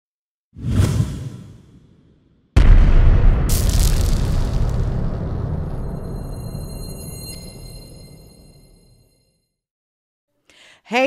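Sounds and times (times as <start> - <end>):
whoosh: 0.6 - 8.9.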